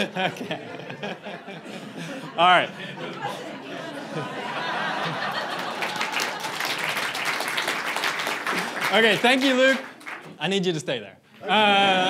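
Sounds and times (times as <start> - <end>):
laughter: 0.0 - 6.5
audience applauding: 4.2 - 10.4.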